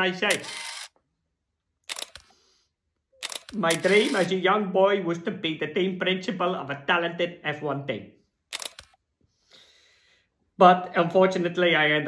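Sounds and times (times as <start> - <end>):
camera shutter clicks: 0.3 - 1.0, 1.9 - 2.3, 3.2 - 4.3, 8.5 - 9.0.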